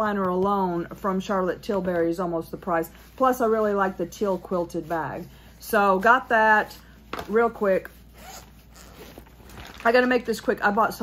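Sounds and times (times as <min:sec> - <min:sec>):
zipper rasping open: 0:08.1 - 0:09.9.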